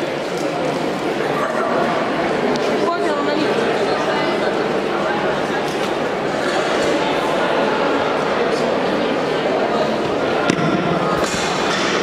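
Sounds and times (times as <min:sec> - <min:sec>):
hubbub of indoor sports hall: 0:00.0 - 0:12.0.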